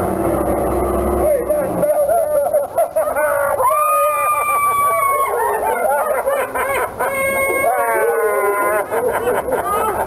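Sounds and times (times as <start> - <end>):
men laughing hard: 1.8 - 10.0.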